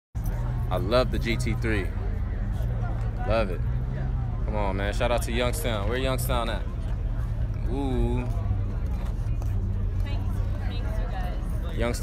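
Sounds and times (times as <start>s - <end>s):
car engine idling: 0.2s - 12.0s
faint chatter of people: 0.2s - 12.0s.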